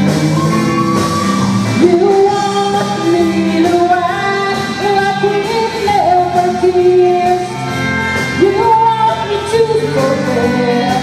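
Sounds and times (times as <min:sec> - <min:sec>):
live rock band playing: 0:00.0 - 0:11.0
woman singing: 0:01.7 - 0:11.0.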